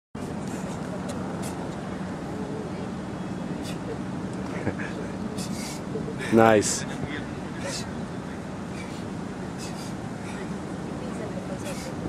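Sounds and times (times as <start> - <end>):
distant road traffic hum: 0.2 - 12.0.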